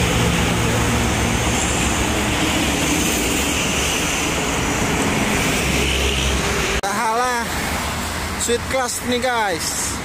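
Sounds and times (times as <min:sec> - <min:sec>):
truck diesel engine passing: 0:00.0 - 0:10.0.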